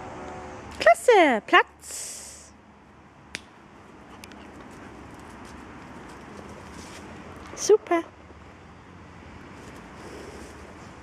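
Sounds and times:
dog moving on grass: 0:04.4 - 0:07.4.

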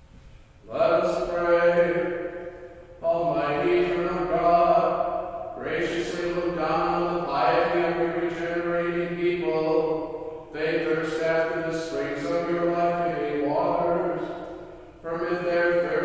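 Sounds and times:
man chanting a prayer: 0:00.6 - 0:02.3, 0:03.0 - 0:14.4, 0:15.0 - 0:16.0.

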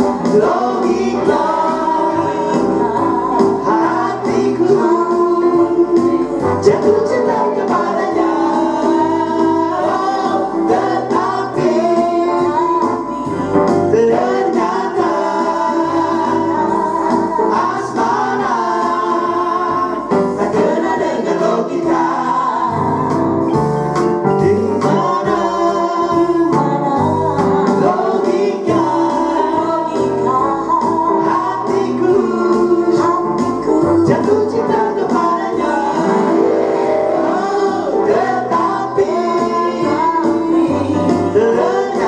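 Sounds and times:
instrumental backing: 0:00.0 - 0:42.0
mixed vocal group singing: 0:00.0 - 0:42.0.

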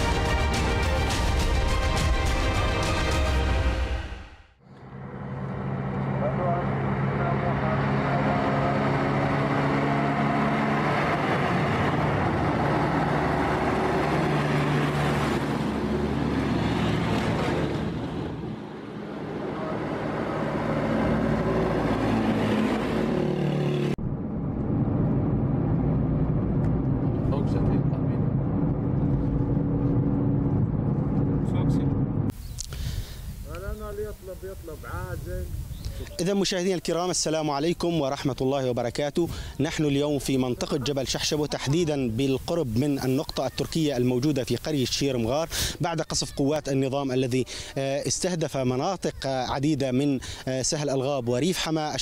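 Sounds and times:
road noise: 0:00.0 - 0:52.0.

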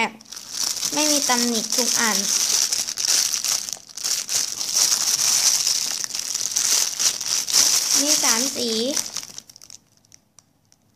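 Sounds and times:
plastic bags crinkling: 0:00.2 - 0:10.8.

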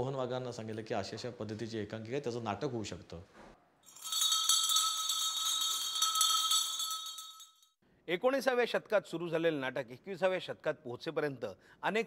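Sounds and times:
small bells jingling: 0:03.8 - 0:07.8.

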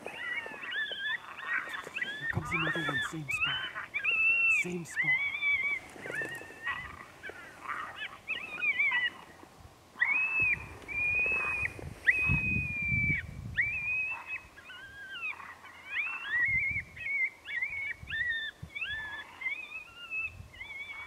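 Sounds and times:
coyote howls and yips: 0:00.0 - 0:09.4, 0:10.0 - 0:21.0.

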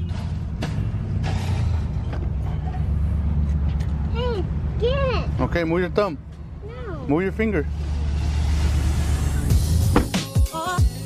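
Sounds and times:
car door lock click: 0:09.9 - 0:10.2.

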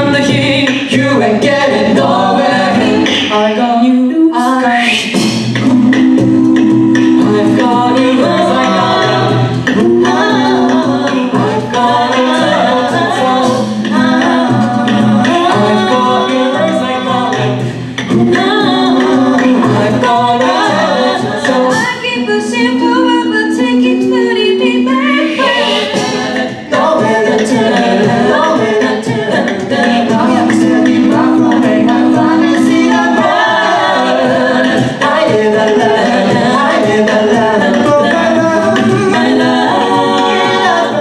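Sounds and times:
a cappella group singing: 0:00.0 - 0:41.0.

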